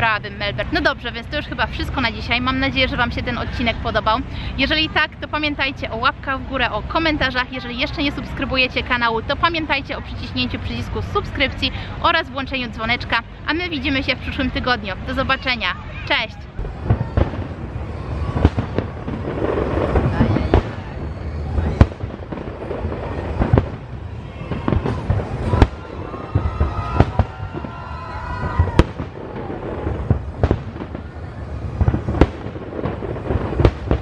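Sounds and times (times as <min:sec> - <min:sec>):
fireworks crackling: 0:00.0 - 0:34.0
fireworks bangs: 0:13.8 - 0:34.0.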